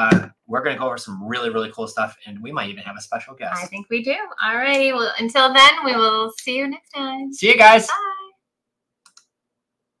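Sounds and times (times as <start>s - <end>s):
person saying bye: 3.5s - 3.8s.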